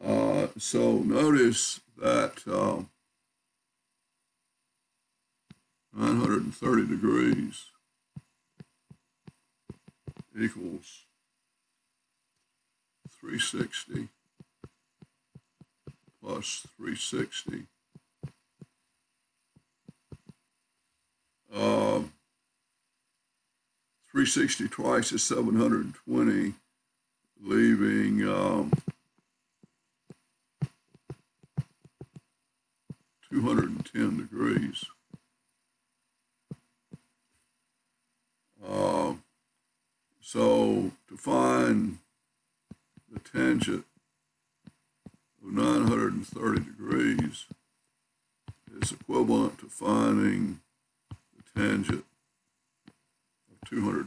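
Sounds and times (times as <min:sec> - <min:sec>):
soft thumps: 0:08.2 - 0:10.4, 0:14.4 - 0:16.7, 0:19.6 - 0:20.4, 0:28.7 - 0:29.0, 0:30.1 - 0:32.3, 0:48.5 - 0:49.1.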